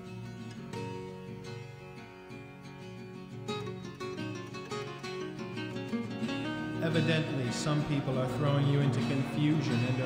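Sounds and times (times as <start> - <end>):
acoustic guitar plucked notes: 0.0 - 10.0.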